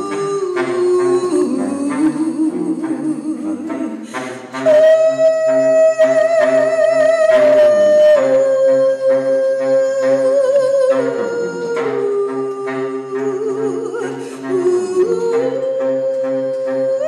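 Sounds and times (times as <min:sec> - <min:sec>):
baritone saxophone playing: 0:00.0 - 0:17.0
woman singing long wavering notes: 0:00.0 - 0:17.0.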